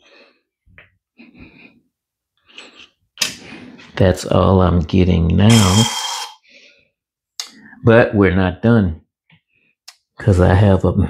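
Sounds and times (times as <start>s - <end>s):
syringe sucking through tubing: 5.5s - 6.4s.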